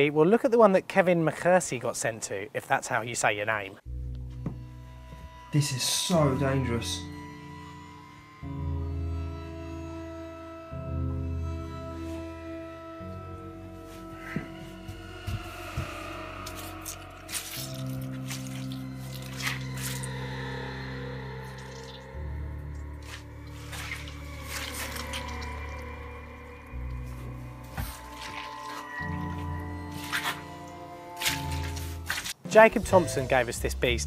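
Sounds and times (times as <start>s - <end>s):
background music with low notes: 3.6s - 34.0s.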